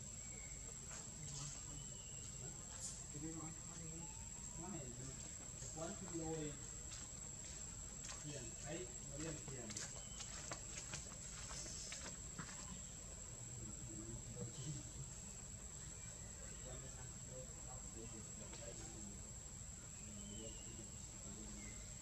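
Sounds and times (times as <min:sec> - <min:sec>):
faint voices talking: 0:00.0 - 0:22.0.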